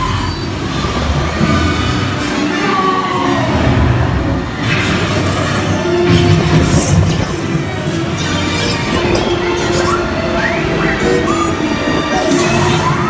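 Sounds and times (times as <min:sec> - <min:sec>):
orchestral music over speakers: 0:00.2 - 0:13.0
low rumble: 0:03.4 - 0:12.8.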